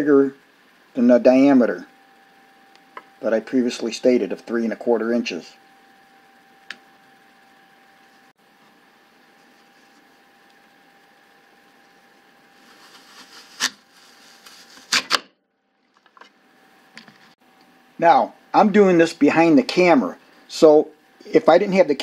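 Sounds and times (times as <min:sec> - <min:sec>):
faint hum: 0:00.0 - 0:22.0
blades crunching through apple: 0:12.6 - 0:15.2.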